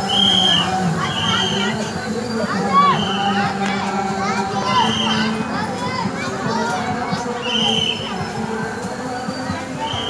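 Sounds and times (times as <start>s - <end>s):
children's voices overlapping: 0.0s - 10.0s.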